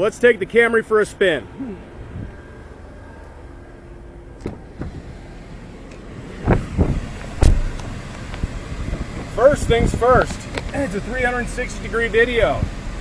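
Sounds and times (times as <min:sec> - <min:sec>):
low steady rumble: 0:00.0 - 0:13.0
loud thud: 0:04.4 - 0:05.1, 0:06.4 - 0:07.9
knocks and rustles: 0:06.4 - 0:09.2.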